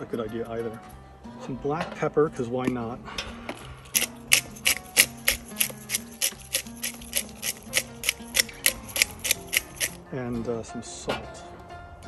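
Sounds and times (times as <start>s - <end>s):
pepper grinder grinding: 3.8s - 10.0s
pepper grinder clicking: 3.9s - 10.0s.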